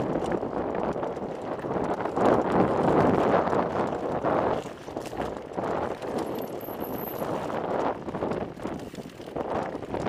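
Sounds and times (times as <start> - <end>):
bike rattling: 0.0 - 10.0
bike tyres crunching over stones: 0.0 - 10.0
wind buffeting microphone: 0.0 - 10.0.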